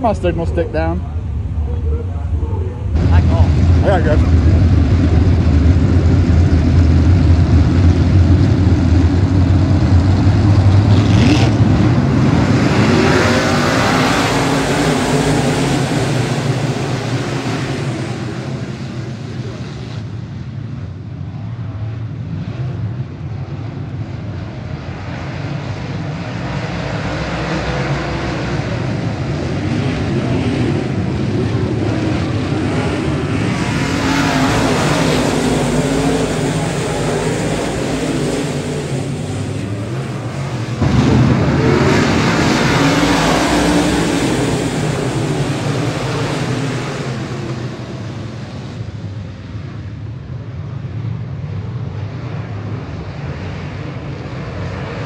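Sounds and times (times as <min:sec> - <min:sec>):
race car engines racing: 0:00.0 - 0:55.0.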